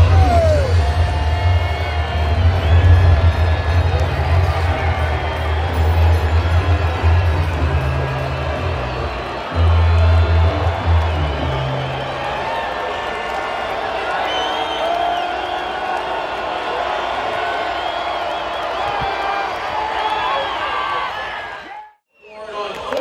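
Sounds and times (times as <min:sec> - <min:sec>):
music over loudspeakers: 0:00.0 - 0:12.1
crowd whooping and whistling: 0:00.0 - 0:23.0
crowd chatter: 0:02.7 - 0:11.8.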